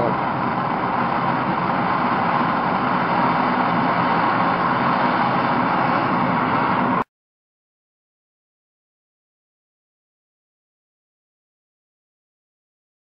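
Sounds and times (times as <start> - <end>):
blow torch hissing: 0.0 - 7.0.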